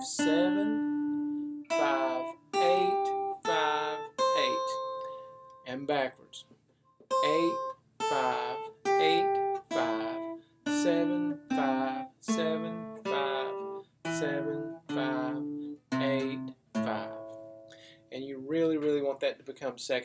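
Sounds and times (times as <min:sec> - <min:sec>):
acoustic guitar picked notes: 0:00.0 - 0:19.2.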